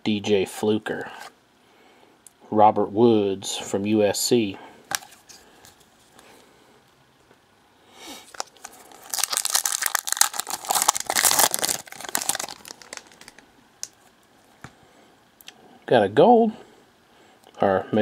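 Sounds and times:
wrapper tearing and crinkling: 8.2 - 14.0.

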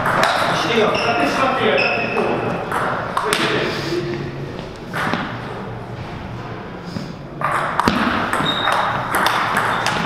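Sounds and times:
table tennis ball bouncing: 0.0 - 0.6, 2.6 - 3.6, 4.8 - 5.5, 7.4 - 10.0
voices talking in a hall: 0.0 - 7.4.

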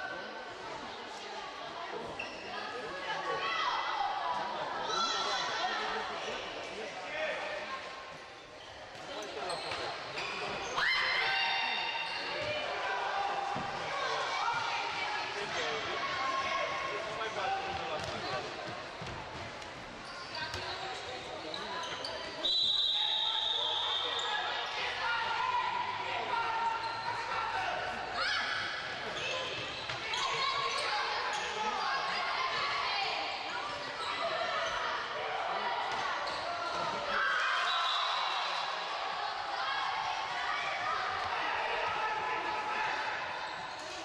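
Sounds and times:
referee's whistle blast: 22.4 - 24.2.

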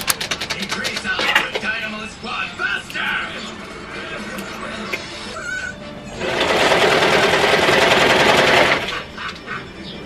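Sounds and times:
serger machine stitching: 6.1 - 9.0.

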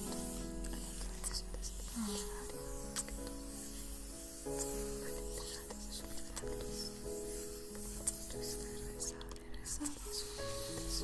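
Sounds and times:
soft solo piano music: 0.0 - 11.0.

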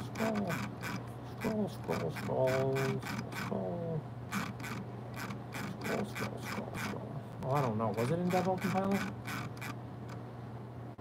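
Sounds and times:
low electrical hum: 0.0 - 11.0
mouse scroll wheel clicking: 0.2 - 3.5, 4.3 - 7.0, 7.6 - 9.8.

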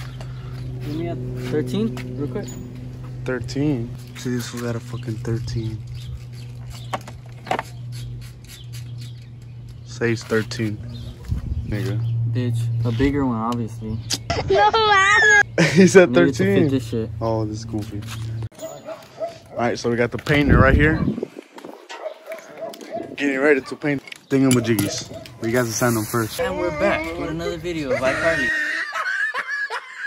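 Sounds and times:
steady low hum: 0.0 - 14.7
dog barking faintly: 21.9 - 23.9.

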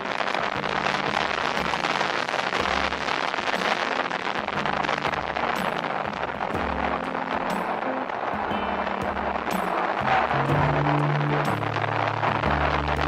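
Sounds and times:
background music with bass: 0.0 - 13.0
crackling wind on microphone: 0.0 - 13.0.

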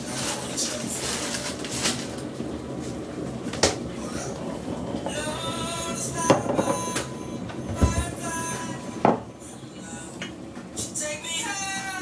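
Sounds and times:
low thump: 7.8 - 8.2.

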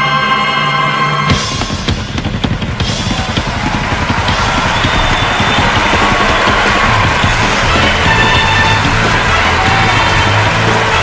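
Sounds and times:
band playing: 0.0 - 11.0
drum hits and cymbals: 1.3 - 11.0.

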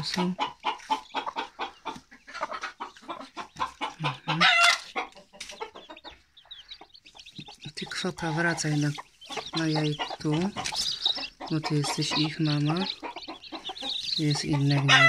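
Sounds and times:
chicks peeping: 0.0 - 15.0
hen clucking: 0.0 - 15.0.

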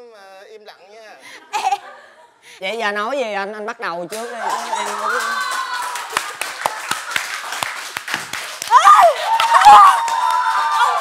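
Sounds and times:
hands clapping: 4.1 - 11.0.

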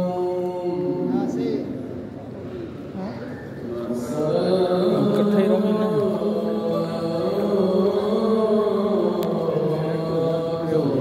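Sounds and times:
man chanting over loudspeakers: 0.0 - 1.8, 3.6 - 11.0.

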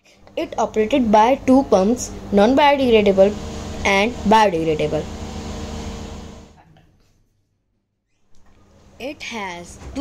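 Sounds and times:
machine hum: 0.0 - 6.6.

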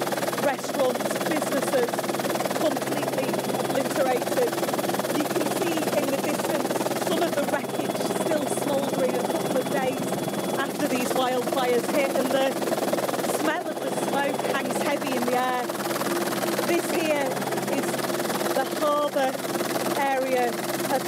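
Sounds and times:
person talking: 0.0 - 2.0, 2.6 - 12.6, 13.2 - 15.8, 16.6 - 19.4, 20.0 - 21.0
helicopter drone from cabin: 0.0 - 21.0.

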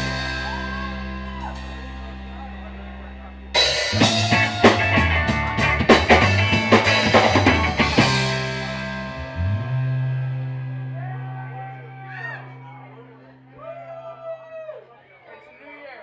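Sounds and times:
drum kit fast hits: 0.0 - 2.7, 3.6 - 9.2
electric guitar chord ringing: 0.0 - 14.2
bass guitar: 0.0 - 14.9.

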